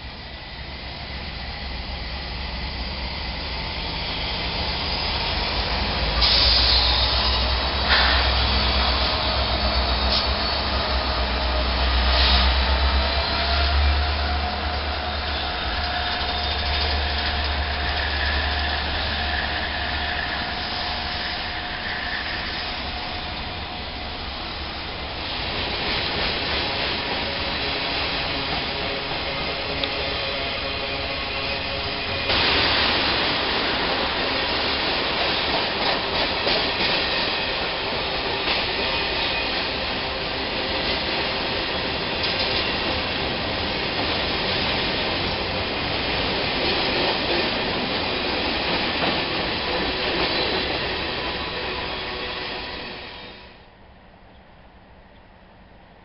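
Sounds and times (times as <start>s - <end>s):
diesel locomotive engine rumble: 0.0s - 56.0s
freight cars wheel and rail noise: 0.0s - 56.0s.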